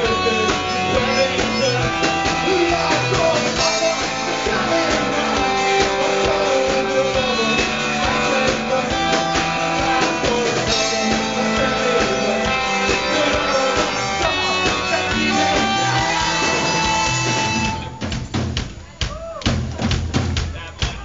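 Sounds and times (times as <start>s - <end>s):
electric guitars: 0.0s - 18.1s
bass guitar: 0.0s - 20.2s
drum kit beat: 0.0s - 21.0s.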